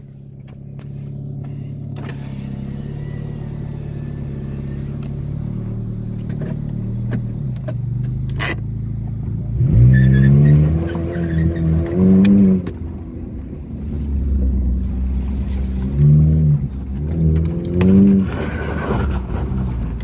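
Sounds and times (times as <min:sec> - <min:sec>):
car engine idling and revving: 0:00.0 - 0:20.0.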